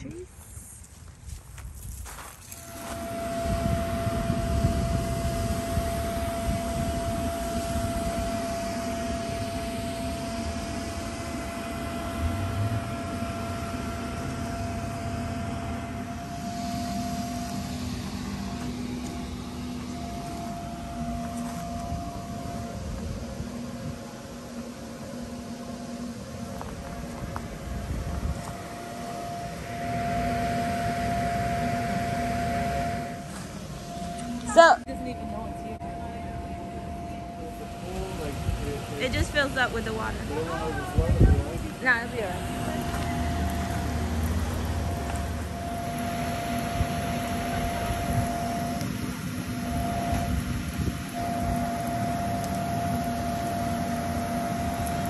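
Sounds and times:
blower motor whine: 0.0s - 55.0s.

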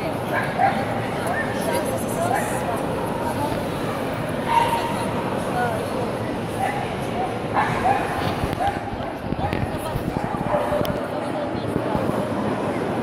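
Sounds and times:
crowd murmur: 0.0s - 13.0s.

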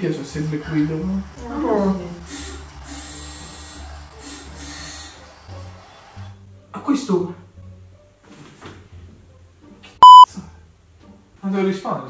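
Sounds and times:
electronic censor bleep: 10.0s - 10.3s.

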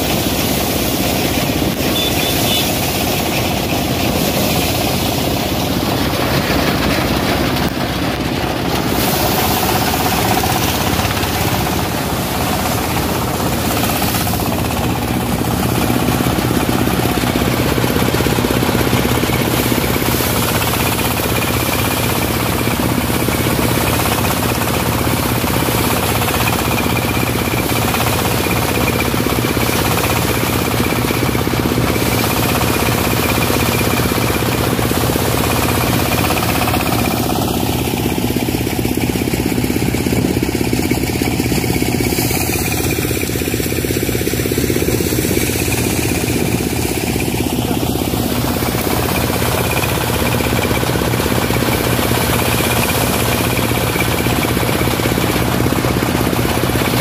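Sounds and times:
threshing machine running: 0.0s - 57.0s.

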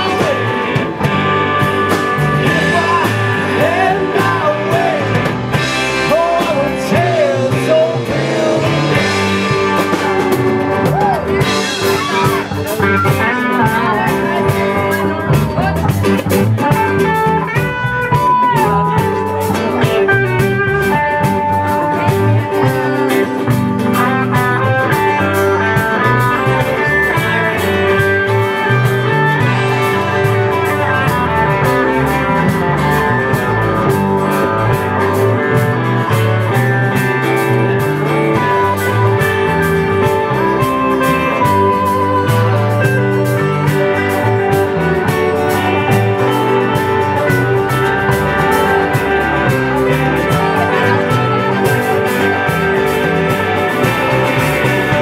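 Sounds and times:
bass guitar: 0.0s - 55.0s
lead electric guitar: 0.0s - 55.0s
rhythm guitar: 0.0s - 55.0s.

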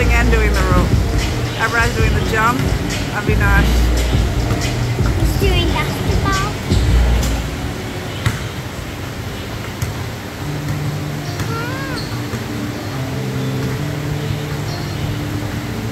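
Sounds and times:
background music with bass line: 0.0s - 7.9s
basketballs bouncing on floor: 1.8s - 5.7s, 8.2s - 8.6s, 9.6s - 12.6s
child calling: 5.2s - 6.7s, 11.3s - 12.3s.

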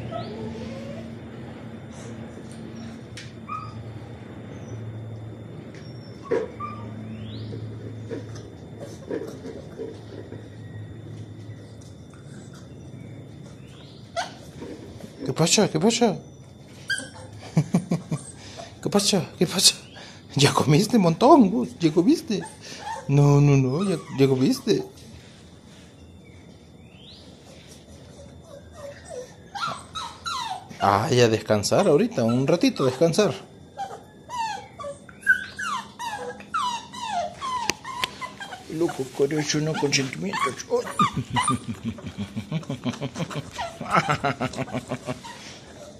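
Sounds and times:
puppy yipping: 0.0s - 1.1s, 2.8s - 3.9s, 5.8s - 7.4s, 13.8s - 14.5s, 16.8s - 17.4s, 22.1s - 25.0s, 27.9s - 41.9s, 43.5s - 45.9s
puppy whining: 0.0s - 45.9s.

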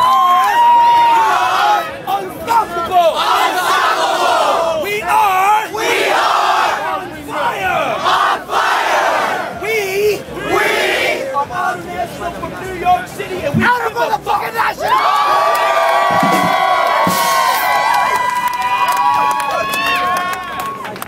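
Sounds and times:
crowd shouting: 0.0s - 11.9s, 13.6s - 20.6s.

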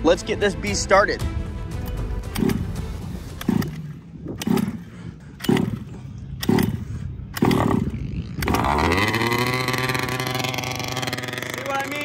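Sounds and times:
small two-stroke engine cranking: 3.4s - 12.0s.

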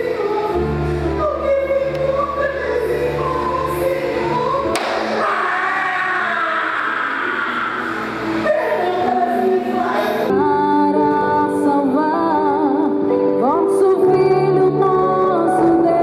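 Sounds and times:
choir singing: 0.0s - 10.5s
sharp knock: 4.7s - 5.2s.

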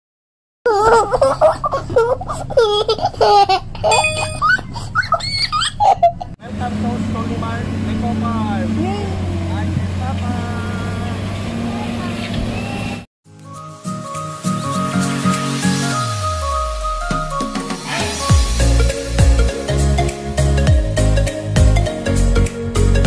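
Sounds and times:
small child laughing and squealing: 0.7s - 6.3s
bell-like chime tones: 3.9s - 4.6s
upbeat background music: 13.3s - 23.0s.

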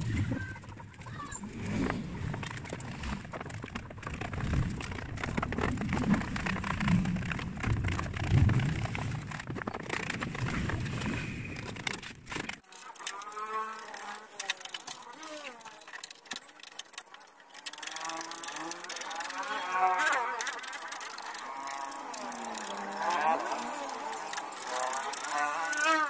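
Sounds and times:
sandpaper scraping: 12.6s - 26.0s.

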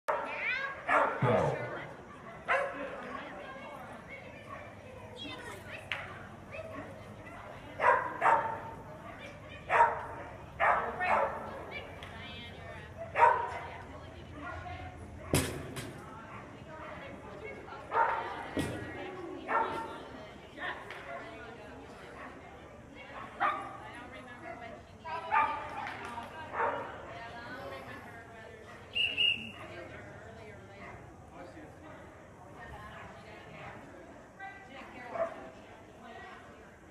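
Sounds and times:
murmur of voices: 0.1s - 36.9s
dog barking: 0.9s - 1.4s, 2.3s - 2.9s, 7.8s - 8.7s, 9.7s - 11.5s, 13.0s - 13.7s, 23.2s - 23.8s, 26.5s - 26.9s.

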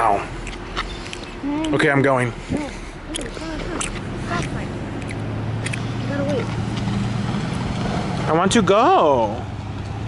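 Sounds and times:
tyres on wet road: 0.0s - 10.0s
vehicle engine hum: 0.0s - 10.0s.

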